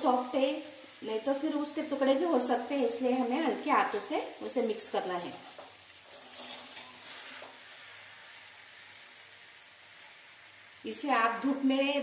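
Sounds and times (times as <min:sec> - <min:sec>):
faint steady hiss: 0:00.0 - 0:12.0
spoon scraping in pan: 0:04.9 - 0:10.3.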